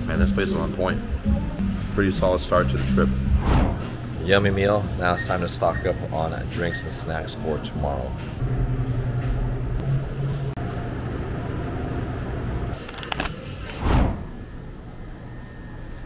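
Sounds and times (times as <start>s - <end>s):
refrigerated coolers humming: 0.0s - 16.0s
loud low thump: 3.2s - 4.0s.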